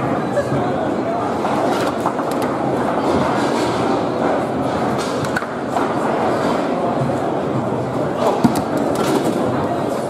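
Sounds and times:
hall background noise: 0.0s - 10.0s.

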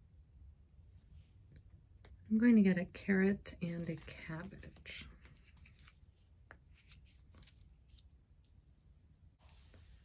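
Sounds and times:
playing cards rustling and tapping: 3.6s - 8.2s.

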